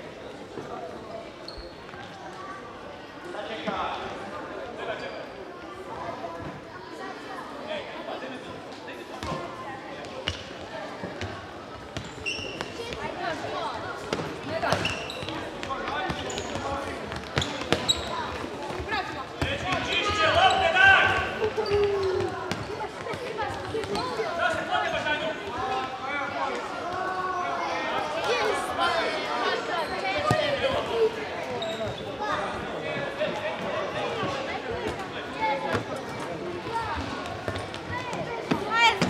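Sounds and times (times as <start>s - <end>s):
shoe squeaks: 1.4s - 2.0s, 12.0s - 12.9s, 14.6s - 16.8s, 17.4s - 18.4s, 21.4s - 22.9s, 31.5s - 32.2s.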